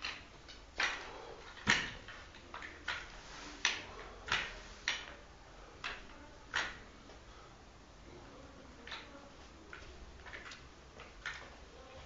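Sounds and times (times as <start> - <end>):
broom swishing on hard floor: 2.9 - 5.1.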